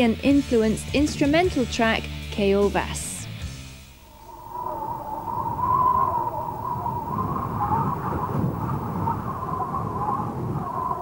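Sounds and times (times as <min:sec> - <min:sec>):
wind howling: 0:04.0 - 0:11.0.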